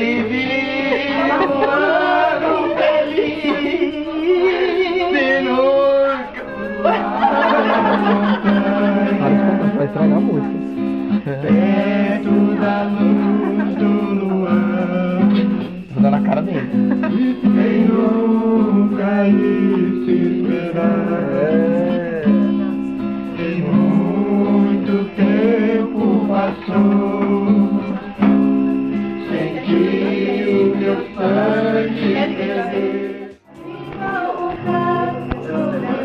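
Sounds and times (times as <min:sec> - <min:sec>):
people singing along: 0:00.0 - 0:10.4, 0:11.2 - 0:15.9, 0:16.6 - 0:36.0
guitar strumming chords: 0:00.0 - 0:36.0.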